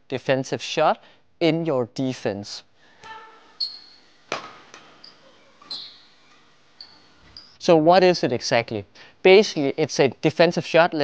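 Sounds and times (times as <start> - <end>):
shoes squeaking on floor: 3.0 - 7.6
rackets hitting shuttlecock: 4.3 - 6.4.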